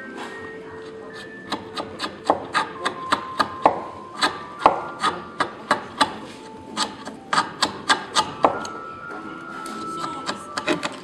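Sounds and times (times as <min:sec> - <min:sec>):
chisel slicing wood: 0:01.1 - 0:08.8, 0:10.0 - 0:11.0.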